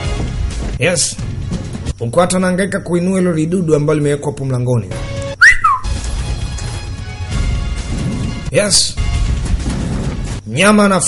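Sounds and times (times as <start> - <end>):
film music: 0.0 - 2.6, 4.8 - 10.9
swooping whistle: 5.4 - 5.9.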